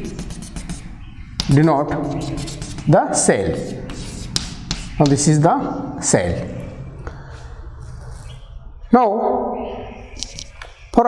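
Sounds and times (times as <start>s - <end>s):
man speaking: 1.5s - 4.0s, 4.9s - 6.8s.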